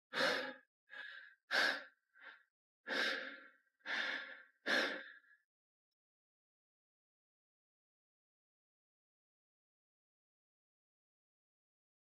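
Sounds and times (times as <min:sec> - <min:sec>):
man breathing heavily: 0:00.1 - 0:05.4.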